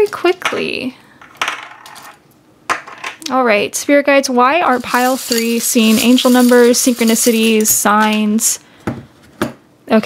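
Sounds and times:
charms and dice clinking in bowl: 0:04.7 - 0:08.5.

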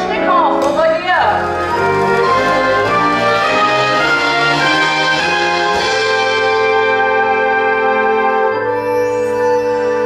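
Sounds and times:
pit orchestra sustained chord: 0:01.3 - 0:10.0.

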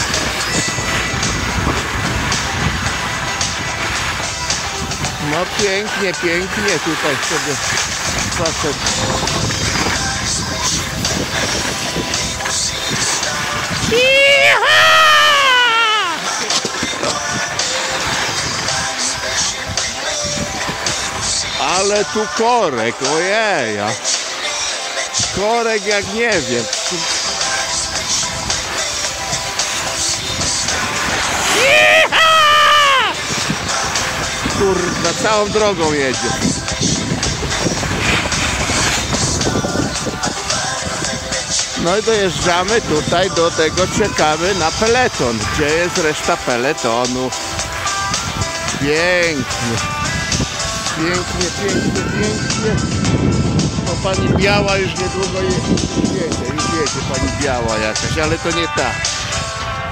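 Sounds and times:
skis scraping over packed snow: 0:00.0 - 0:15.4, 0:16.0 - 0:52.9
wind on microphone: 0:00.0 - 0:22.3, 0:26.0 - 0:59.9
person calling out: 0:13.9 - 0:16.2, 0:31.5 - 0:33.2.

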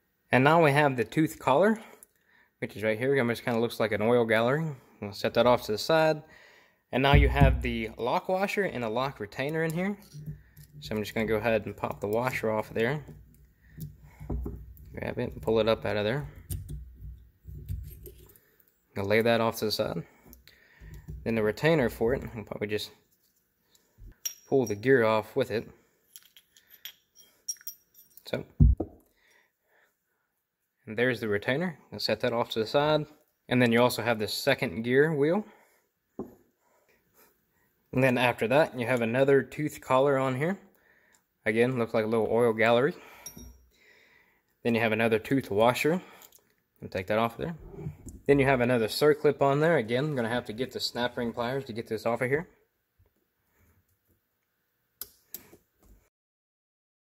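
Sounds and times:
low thump: 0:07.2 - 0:07.8
faint metal handling noise: 0:09.4 - 0:18.6, 0:26.1 - 0:28.4.

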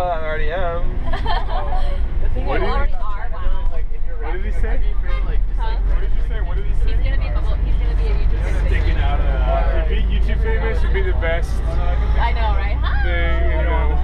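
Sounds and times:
bus engine and road rumble: 0:00.0 - 0:14.0
passengers chattering: 0:00.0 - 0:14.0.

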